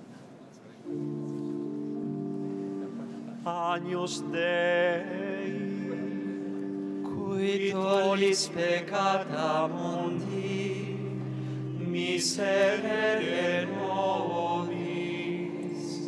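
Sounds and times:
organ chords: 0:00.9 - 0:16.0.

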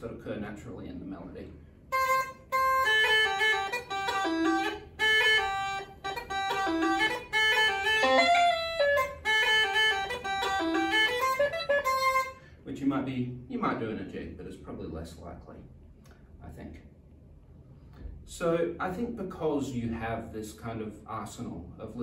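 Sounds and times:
uilleann pipes staccato melody: 0:01.9 - 0:12.4.

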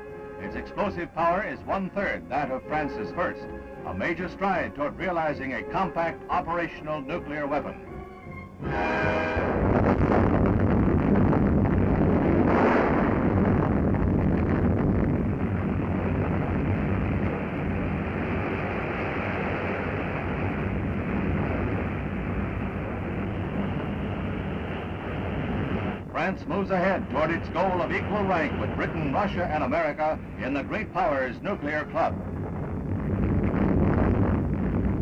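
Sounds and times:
explosion deep rumble: 0:09.0 - 0:35.0.

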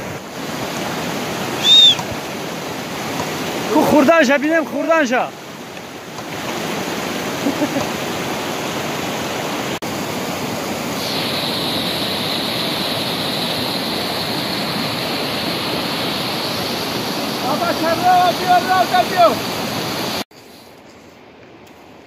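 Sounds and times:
stream rushing over rocks: 0:00.0 - 0:20.3.

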